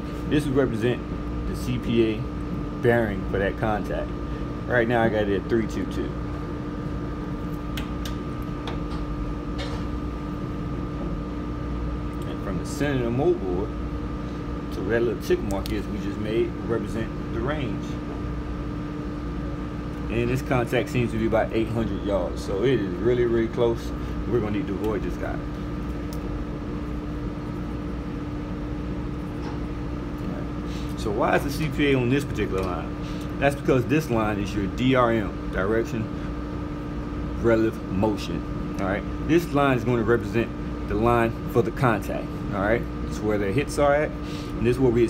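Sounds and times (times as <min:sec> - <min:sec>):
ventilation hum: 0:00.0 - 0:45.0.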